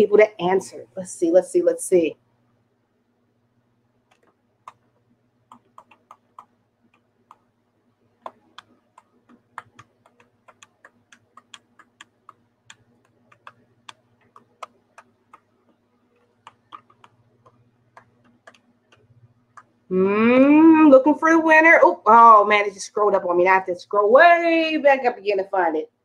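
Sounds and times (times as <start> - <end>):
faint low hum: 0.0 - 26.0
computer mouse clicking: 4.1 - 4.9, 5.5 - 7.5, 8.2 - 19.8.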